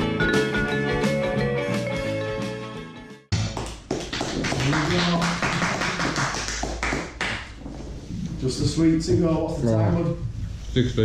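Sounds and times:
background music: 0:00.0 - 0:03.6
room noise: 0:03.3 - 0:11.0.

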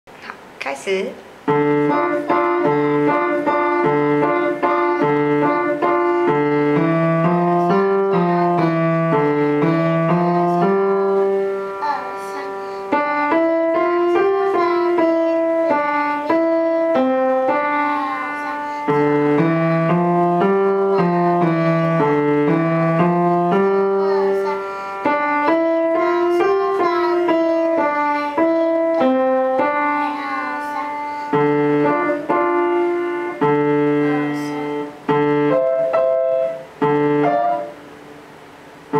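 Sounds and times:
upright piano piece: 0:00.7 - 0:38.9.

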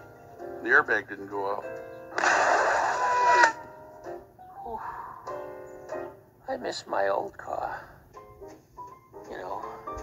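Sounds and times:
soft music: 0:00.0 - 0:10.0.

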